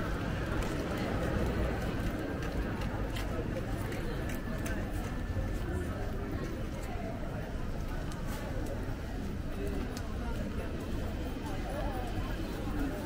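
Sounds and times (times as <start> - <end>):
footsteps clicking on paving: 0.0 - 7.0
low traffic rumble: 0.0 - 13.0
passers-by talking: 0.0 - 13.0.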